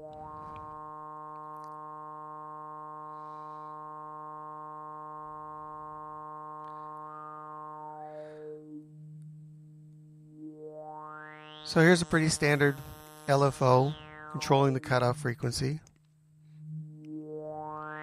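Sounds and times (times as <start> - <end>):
synthesizer filter sweeping: 0.0 - 18.0.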